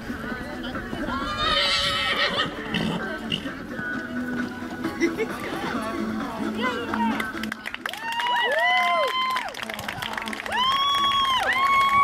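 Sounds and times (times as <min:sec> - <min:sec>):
horse whinnying: 0:01.2 - 0:03.5.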